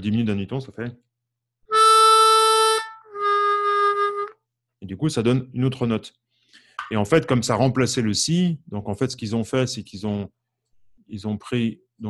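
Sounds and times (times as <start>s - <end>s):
harmonica held notes: 1.7s - 4.4s.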